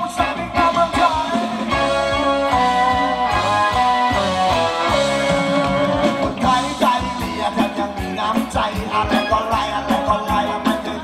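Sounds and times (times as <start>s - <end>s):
steady drum beat: 0.0s - 11.0s
instrumental dance melody: 0.6s - 11.0s.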